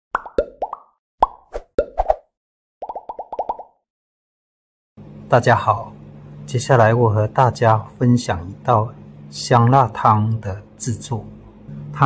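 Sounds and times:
bubbly pops: 0.1s - 2.1s, 2.8s - 3.8s.

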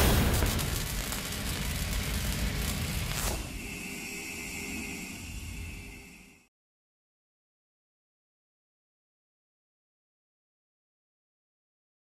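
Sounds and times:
boom with rumbling decay: 0.0s - 3.2s.

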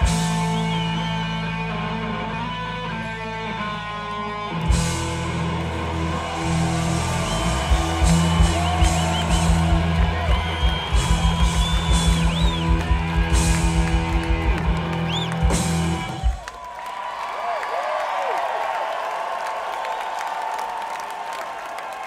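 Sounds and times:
electric guitar lead notes: 0.0s - 16.3s
live rock band playing: 0.0s - 16.4s.

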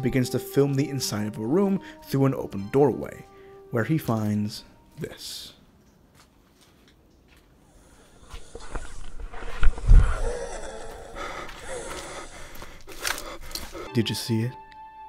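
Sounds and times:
raspy wheezing breathing: 7.6s - 14.0s.

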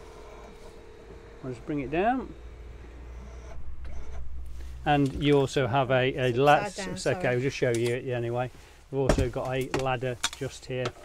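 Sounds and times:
electric bed motor humming: 0.0s - 4.7s.

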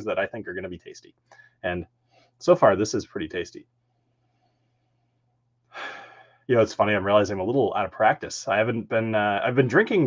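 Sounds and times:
person exhaling with a sigh: 5.7s - 6.4s.

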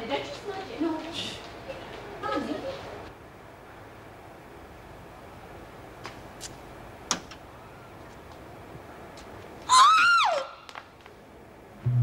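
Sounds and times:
woman's high-pitched whoop: 9.7s - 10.5s.

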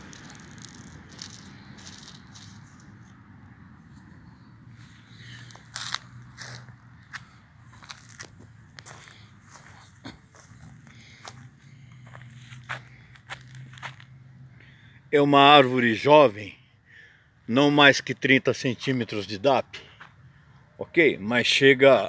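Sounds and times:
footsteps on dry leaves: 0.0s - 3.1s, 4.8s - 14.1s.

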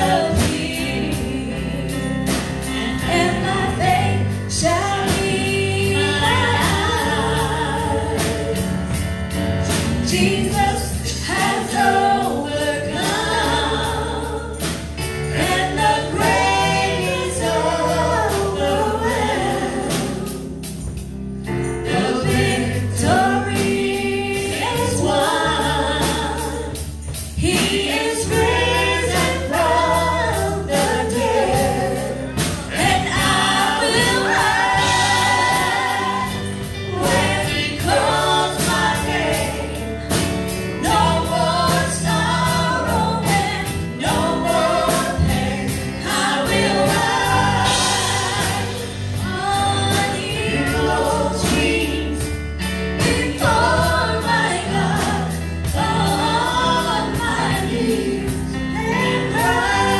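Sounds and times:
band with electric guitars and drums: 0.0s - 59.9s
group singing gospel song: 0.0s - 59.9s.

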